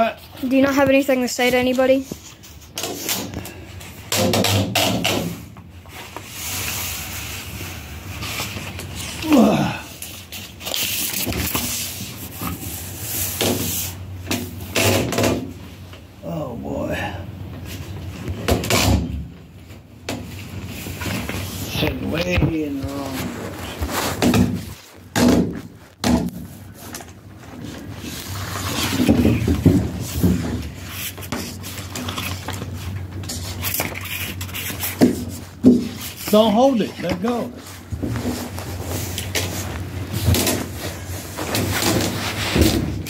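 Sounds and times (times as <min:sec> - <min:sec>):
rustling and handling noise: 0:00.0 - 0:16.2, 0:17.4 - 0:43.0
person muttering: 0:09.2 - 0:10.0.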